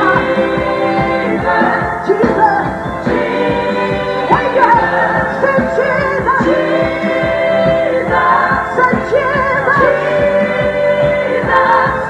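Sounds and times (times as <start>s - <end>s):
backing singer: 0.0s - 12.0s
drums keeping a steady beat: 0.0s - 12.0s
keyboards: 0.0s - 12.0s
woman singing gospel: 0.0s - 12.0s.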